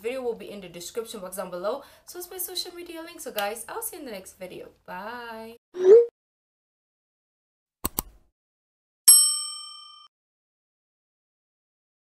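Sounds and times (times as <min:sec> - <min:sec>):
notification bell chime: 0:09.1 - 0:10.1.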